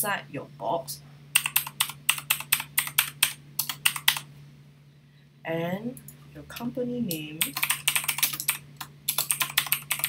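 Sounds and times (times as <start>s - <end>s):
keyboard typing: 1.4s - 4.3s, 7.1s - 10.0s.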